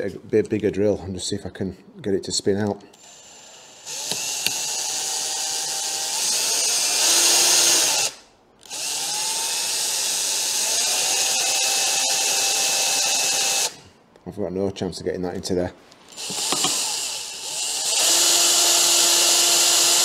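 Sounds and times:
cordless drill grinding metal: 3.0s - 13.8s, 16.1s - 20.0s.

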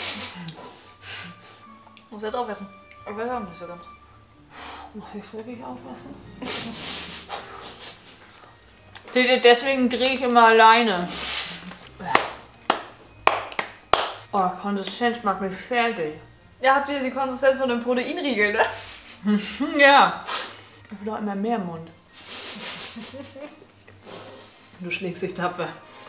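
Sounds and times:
faint background music: 0.0s - 26.0s
breathy laugh: 6.4s - 8.4s
hands clapping or slapping: 11.6s - 15.0s.

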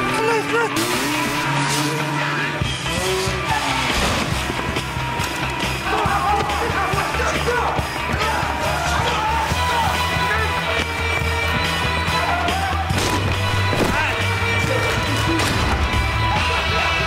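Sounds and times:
car sound effects: 0.0s - 5.8s
film soundtrack music: 0.0s - 17.0s
voices: 5.5s - 17.0s.

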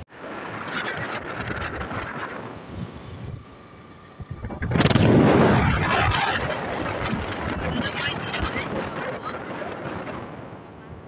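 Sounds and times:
vehicle road noise: 0.0s - 11.0s
loud rushing noise: 4.2s - 10.6s.

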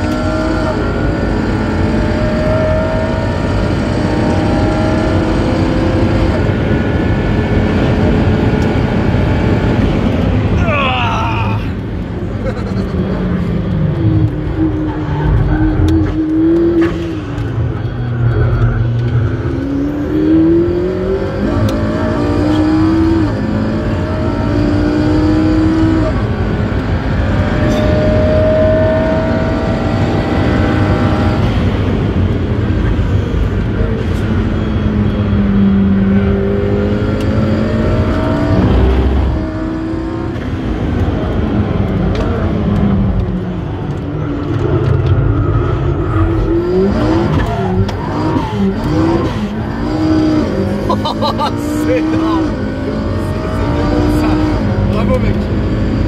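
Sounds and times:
car engine revving: 0.0s - 56.0s.

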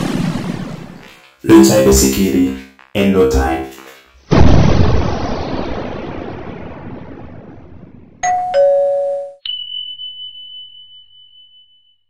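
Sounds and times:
deep boom: 4.3s - 8.2s
two-note ding-dong chime: 8.2s - 12.0s.

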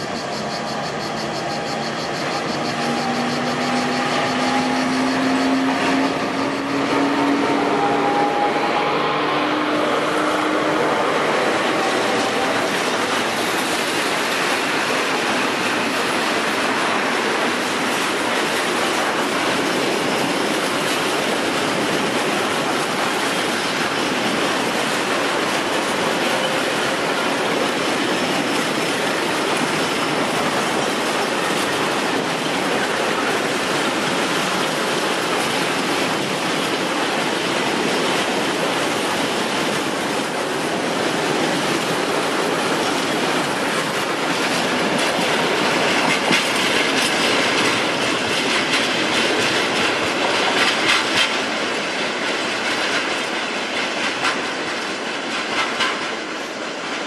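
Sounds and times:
train wheels rumbling on rails: 0.0s - 57.0s
wheels clattering over rail joints: 9.8s - 57.0s.

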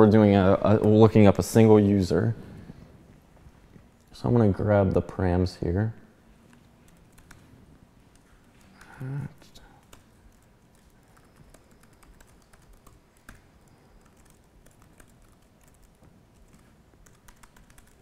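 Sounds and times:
faint computer keyboard keystrokes: 6.5s - 7.5s, 8.1s - 18.0s.

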